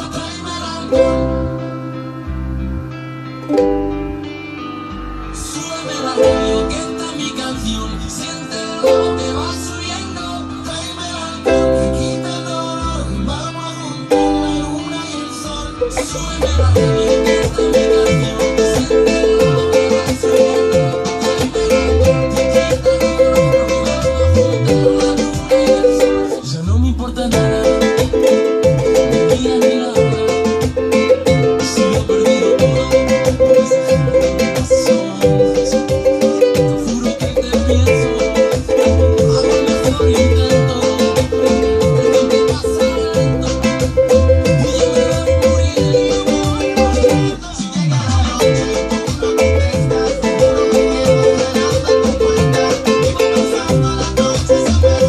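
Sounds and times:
ukulele strumming: 0.8s - 2.4s, 3.2s - 10.2s, 11.3s - 26.5s, 27.3s - 55.0s
repeating low beat: 14.1s - 55.0s.

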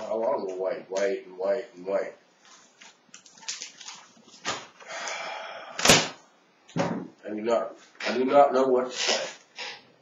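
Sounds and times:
paper rustling and crinkling: 2.4s - 4.8s.

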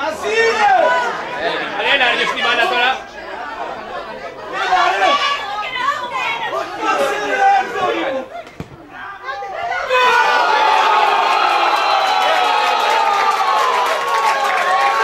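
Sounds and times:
people shouting over one another: 9.6s - 11.9s.

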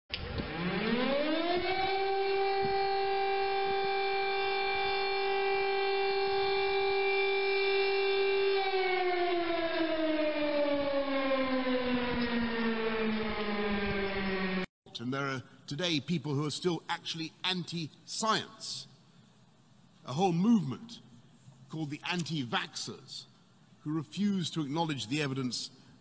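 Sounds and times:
siren wailing: 0.2s - 14.7s.

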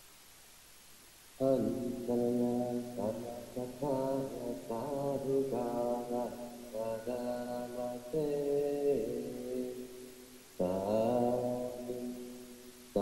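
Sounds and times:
chanting in drawn-out syllables: 1.4s - 10.0s, 10.6s - 13.0s.

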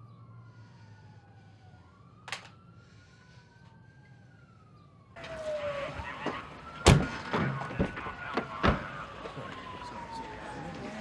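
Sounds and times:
distant police sirens wailing: 0.0s - 11.0s.

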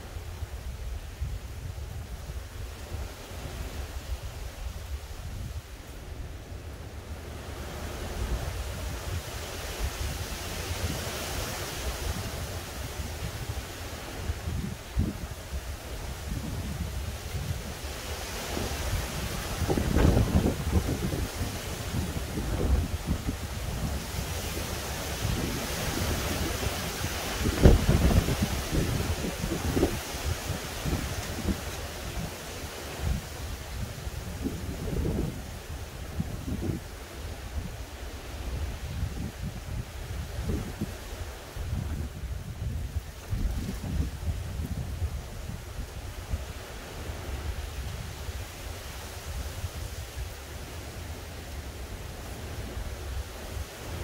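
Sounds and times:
gusty wind through trees: 0.0s - 54.0s
wind buffeting microphone: 0.0s - 54.0s.

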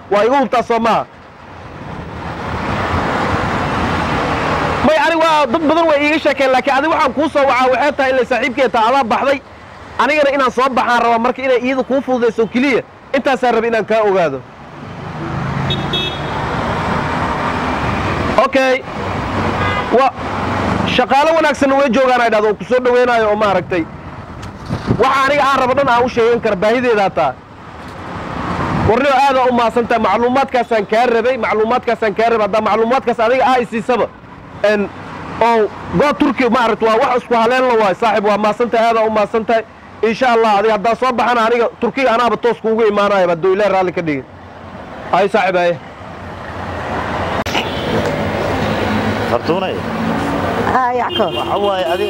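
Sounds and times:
man talking loudly: 0.0s - 1.1s, 4.8s - 9.4s, 10.0s - 14.4s, 20.8s - 23.9s, 25.0s - 27.4s, 28.9s - 44.3s, 49.3s - 50.0s
road noise: 0.0s - 52.0s
street traffic noise: 0.0s - 52.0s
auto-rickshaw engine rumble: 47.3s - 52.0s.

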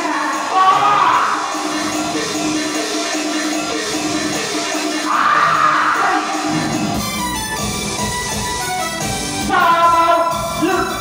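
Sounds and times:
stage opera music: 0.0s - 3.0s, 4.6s - 7.3s, 9.4s - 11.0s.

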